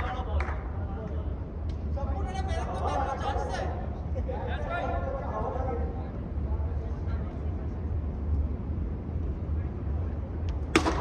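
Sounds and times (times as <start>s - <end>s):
cricket bat hitting ball: 10.7s - 11.0s.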